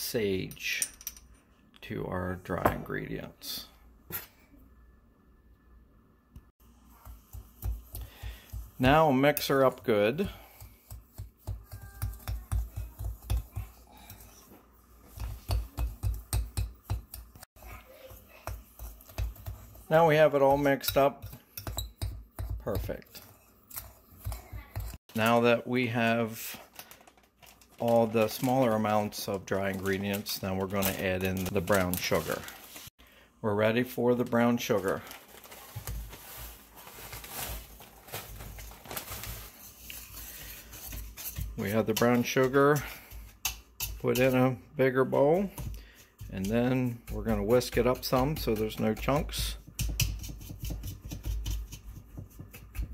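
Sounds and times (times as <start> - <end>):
plastic bag rustling: 26.0 - 32.9, 34.1 - 39.8.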